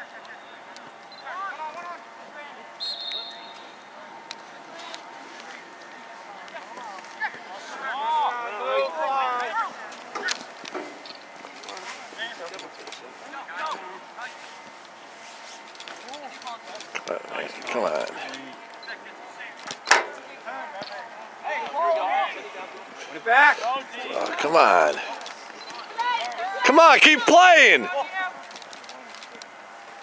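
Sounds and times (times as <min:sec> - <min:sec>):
players and spectators shouting: 0:07.2 - 0:10.3, 0:23.4 - 0:25.2, 0:25.8 - 0:28.2.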